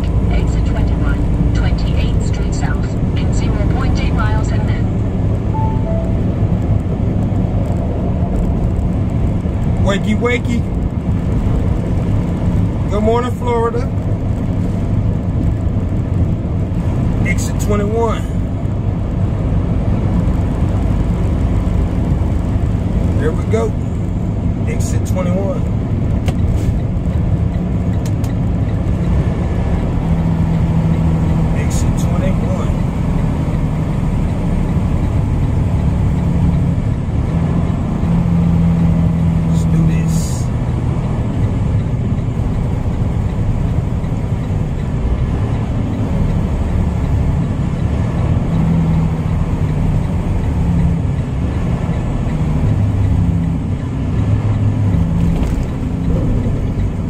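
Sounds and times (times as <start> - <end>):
truck diesel engine drone: 0.0 - 57.0.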